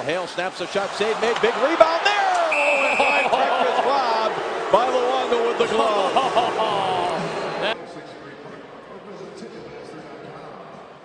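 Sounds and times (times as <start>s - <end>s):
arena crowd noise: 0.0s - 11.0s
indistinct voices: 1.3s - 7.8s
steady whistle tone: 2.4s - 3.4s.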